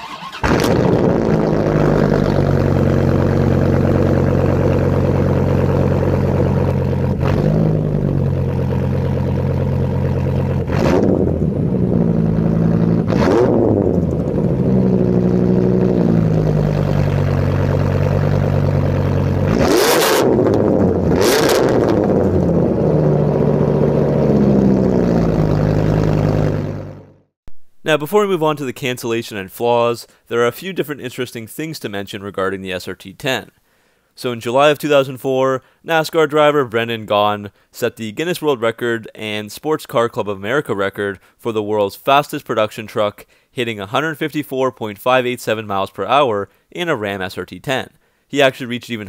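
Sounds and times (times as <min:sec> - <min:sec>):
car engine idling and revving: 0:00.5 - 0:27.3.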